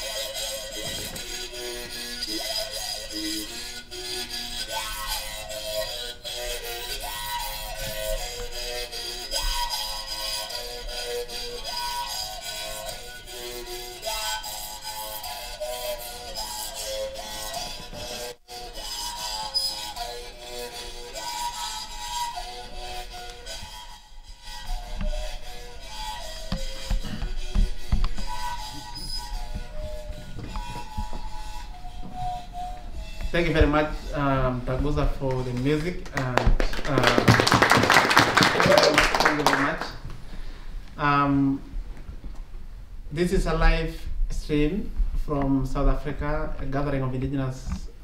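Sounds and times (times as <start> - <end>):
mouth-resonated musical bow melody: 0.0 - 40.5.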